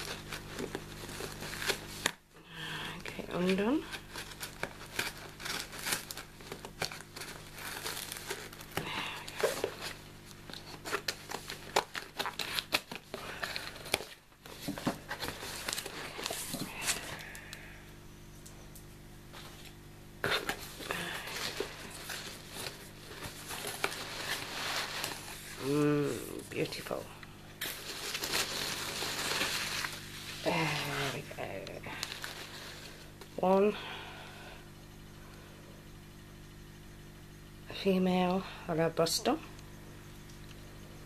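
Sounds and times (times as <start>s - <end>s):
cardboard flaps crinkling: 0.0s - 2.2s, 3.0s - 17.4s, 19.3s - 27.0s, 27.6s - 33.2s
packing tape tearing: 0.0s - 2.2s, 3.4s - 17.4s, 27.6s - 31.2s.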